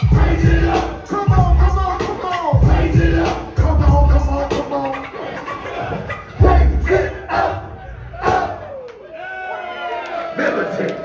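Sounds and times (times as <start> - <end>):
deep bass beat: 0.0 - 4.8, 6.4 - 7.1
crowd noise: 0.0 - 11.0.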